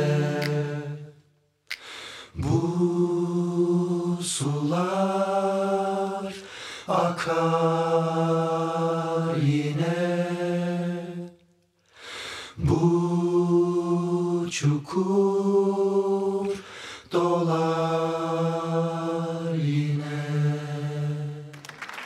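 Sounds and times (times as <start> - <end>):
men chanting into microphones: 0.0 - 1.1.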